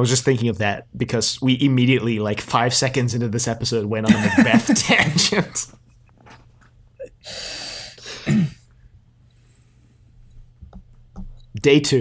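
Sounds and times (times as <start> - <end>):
low steady hum: 0.0 - 12.0
breath rushing out: 7.2 - 8.3.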